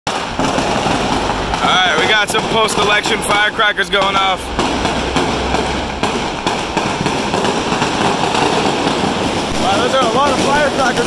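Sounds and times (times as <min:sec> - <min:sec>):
firecrackers crackling: 0:00.1 - 0:11.0
man speaking: 0:01.6 - 0:04.5, 0:09.6 - 0:11.0.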